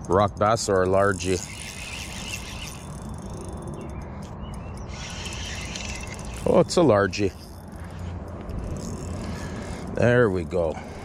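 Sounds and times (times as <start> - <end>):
bird chirps: 1.4 - 6.8.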